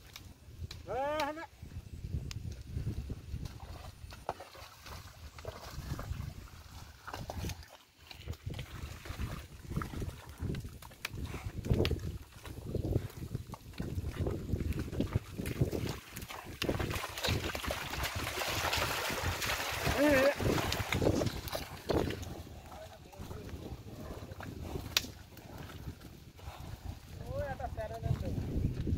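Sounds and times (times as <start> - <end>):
hooves and wheels squelching in mud: 0.0 - 28.9
person calling: 0.8 - 1.5.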